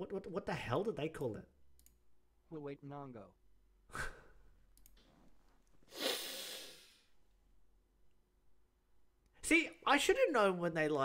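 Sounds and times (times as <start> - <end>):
computer mouse clicks: 1.7 - 2.0, 4.7 - 5.1
man exhaling: 5.9 - 7.1.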